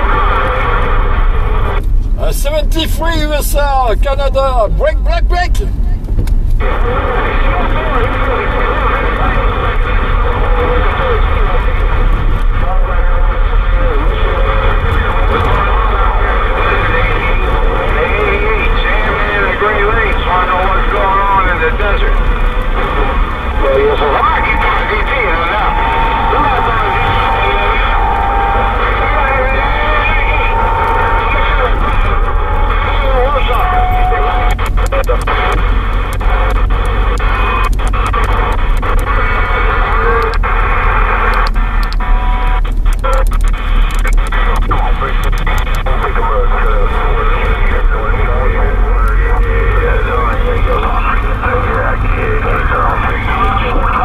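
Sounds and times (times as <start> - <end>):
faint garbled radio voices: 0.0 - 54.0
radio crackles: 0.0 - 54.0
radio static hiss: 0.0 - 54.0.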